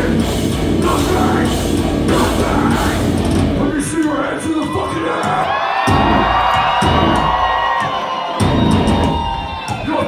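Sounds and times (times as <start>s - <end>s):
distorted guitars bending notes: 0.0s - 7.4s
chugging bass and drums: 0.0s - 7.8s, 8.4s - 10.0s.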